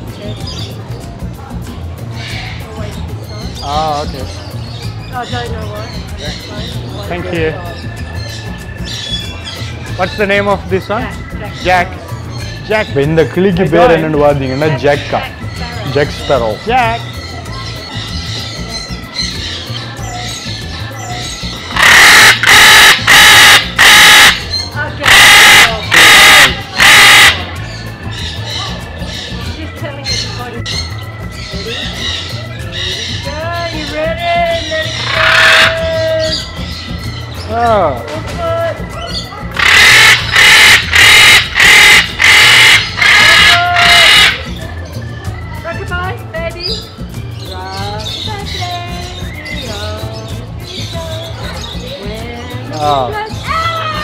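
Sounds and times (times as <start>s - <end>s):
macaw screeching: 20.2s - 29.4s, 30.1s - 37.4s, 39.0s - 44.6s.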